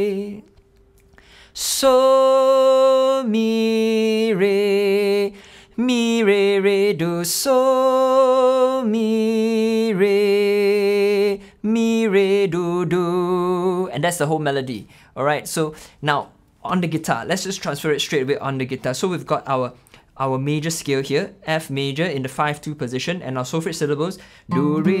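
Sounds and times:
man singing unaccompanied: 0:00.0 - 0:00.5, 0:01.6 - 0:14.4, 0:24.5 - 0:25.0.

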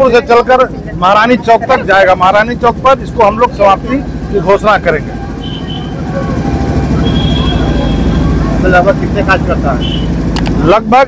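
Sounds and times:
faint voices: 0:00.0 - 0:10.2
vehicle engine rumbling: 0:00.0 - 0:11.0
thin high tone: 0:04.4 - 0:10.2.

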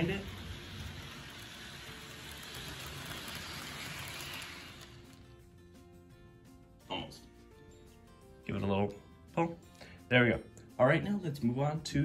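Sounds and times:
model train whirring on track: 0:00.0 - 0:05.3
quiet background music: 0:00.0 - 0:12.0.

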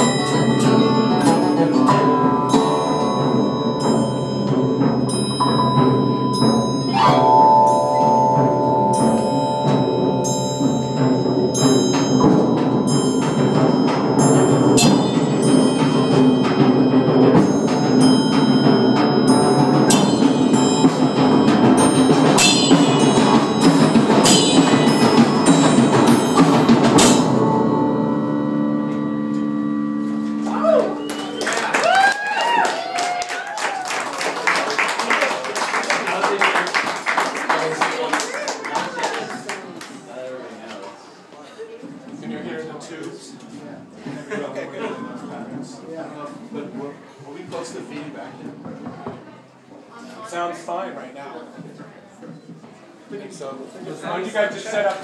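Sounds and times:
held low tones: 0:00.0 - 0:31.8
struck mallet percussion notes: 0:00.0 - 0:32.6.

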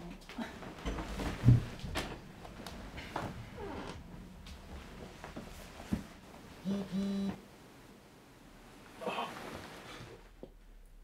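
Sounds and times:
man groaning: 0:09.0 - 0:09.4.

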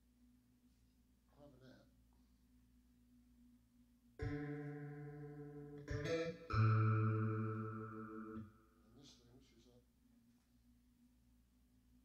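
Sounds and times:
synth chords: 0:04.2 - 0:08.7.

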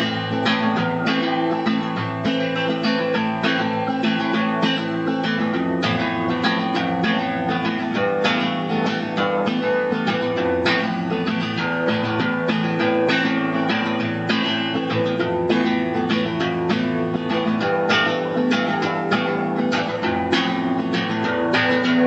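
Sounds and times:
acoustic guitar strummed: 0:00.0 - 0:22.0.

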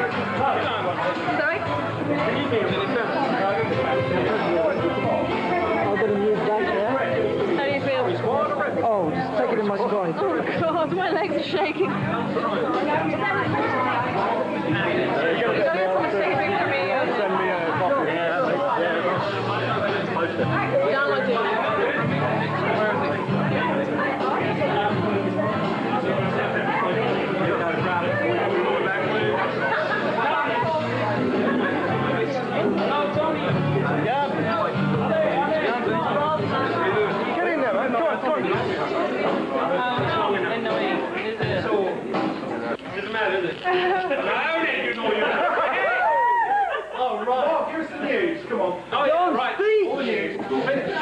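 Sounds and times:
crowd conversation: 0:00.0 - 0:51.0
people talking over one another: 0:00.0 - 0:51.0.

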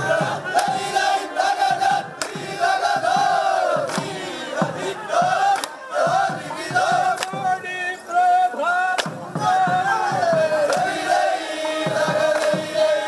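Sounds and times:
men chanting and shouting: 0:00.0 - 0:13.0.

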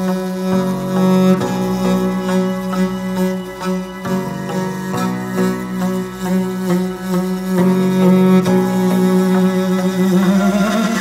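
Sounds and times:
bowed fiddle long low note: 0:00.0 - 0:11.0.

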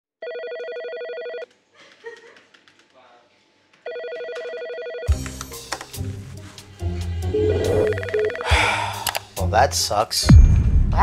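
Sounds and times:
electronic telephone ringing: 0:00.2 - 0:01.4, 0:03.9 - 0:05.1, 0:07.3 - 0:08.5.

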